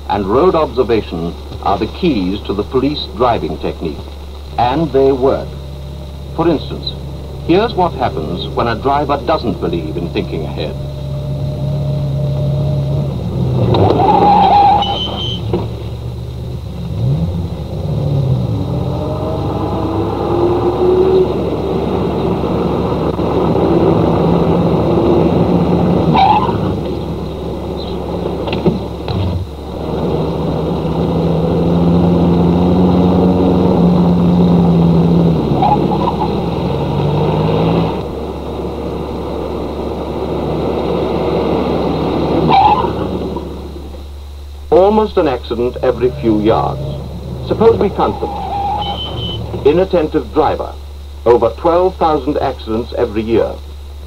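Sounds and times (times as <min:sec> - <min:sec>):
car engines revving in traffic: 0:00.0 - 0:54.0.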